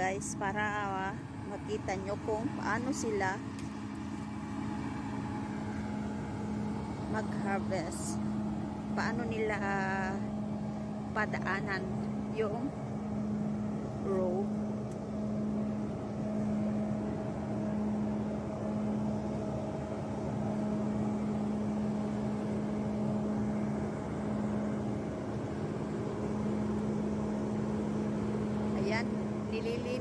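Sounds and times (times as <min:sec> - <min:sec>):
harvester engine droning: 0:00.0 - 0:30.0.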